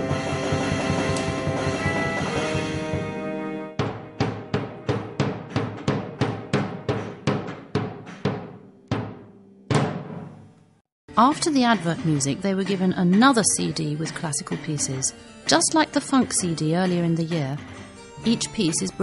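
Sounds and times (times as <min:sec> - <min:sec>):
electronic keyboard chords: 0:00.0 - 0:03.8
drum struck with soft mallet: 0:03.8 - 0:10.4.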